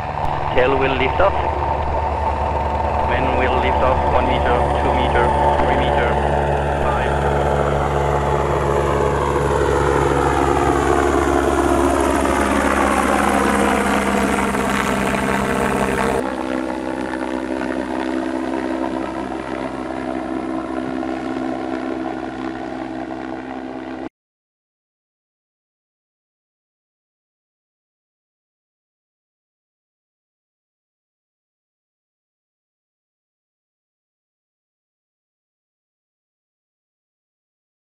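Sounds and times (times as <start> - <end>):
electric propellers humming: 0.0 - 24.0.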